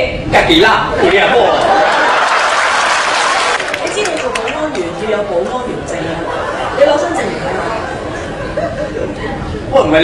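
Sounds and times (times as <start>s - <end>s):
audience applauding: 1.6s - 5.2s.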